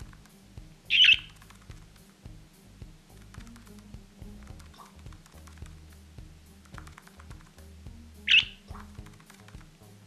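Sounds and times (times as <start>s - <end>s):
background music with ticking beat: 0.0s - 10.0s
budgerigar squawk: 0.9s - 1.3s, 8.3s - 8.7s.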